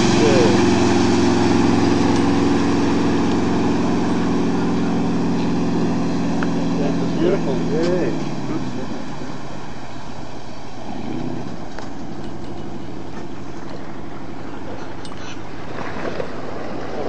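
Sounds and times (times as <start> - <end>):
boat engine running: 0.0 - 17.0
water rushing along hull: 0.0 - 17.0.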